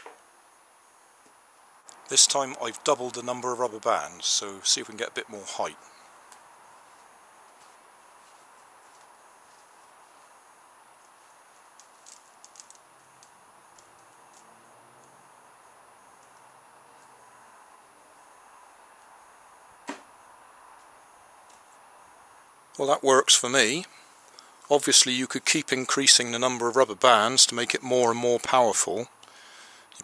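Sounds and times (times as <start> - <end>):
faint outdoor background: 0.0 - 30.0
cardboard rocket launching snap: 19.8 - 20.1.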